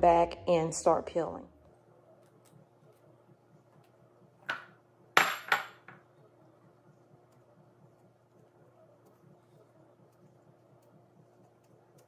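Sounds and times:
glass bowl clinking on countertop: 4.5 - 6.0.

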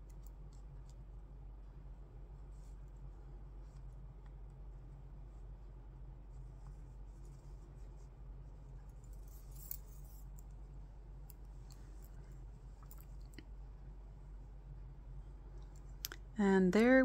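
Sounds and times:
low steady hum: 0.0 - 17.0
yarn rustling: 6.3 - 10.4.

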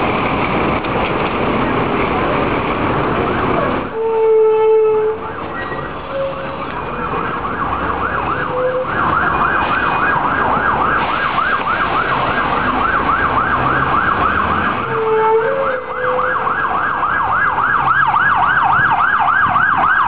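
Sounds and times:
street traffic: 0.0 - 20.0
emergency siren yelping: 4.0 - 20.0.

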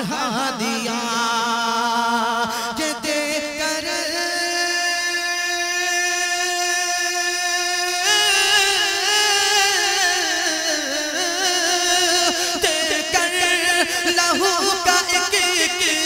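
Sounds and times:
man singing: 0.0 - 16.0.

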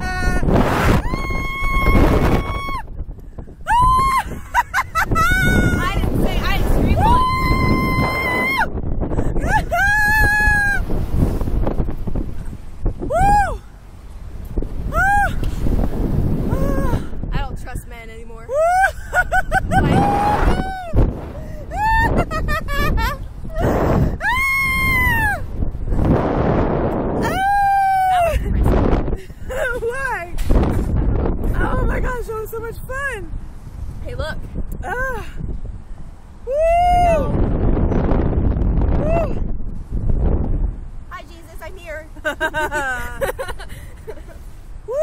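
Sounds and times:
wind rushing over microphone: 0.0 - 45.0
woman screaming: 0.9 - 2.8, 3.7 - 4.4, 5.1 - 6.0, 6.9 - 8.7, 9.4 - 10.8, 19.7 - 21.0, 21.7 - 22.3, 24.2 - 25.4, 27.2 - 28.4.

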